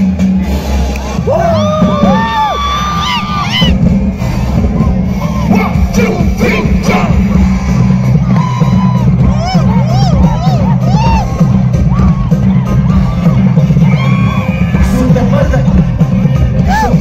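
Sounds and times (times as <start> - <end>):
loud live concert music: 0.0 - 17.0.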